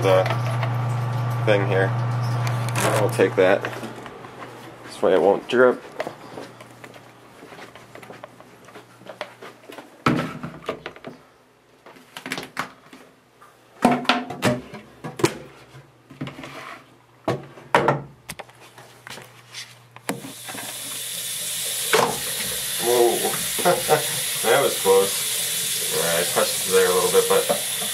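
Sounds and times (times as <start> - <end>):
plastic knocks and rustles: 9.1 - 11.2
tap running into sink: 20.1 - 27.9.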